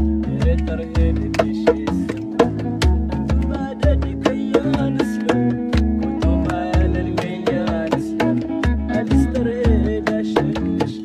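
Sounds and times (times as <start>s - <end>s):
bass guitar low notes: 0.0s - 11.0s
electric guitar bending notes: 0.0s - 11.0s
percussive beat: 0.0s - 11.0s.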